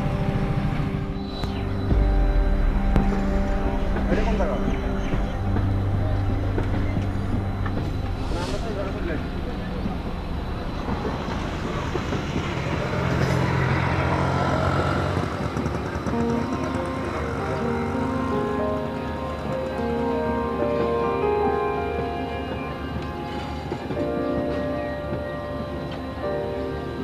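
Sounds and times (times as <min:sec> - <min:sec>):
background music with held notes: 0:00.0 - 0:27.0
passenger train passing: 0:00.0 - 0:27.0.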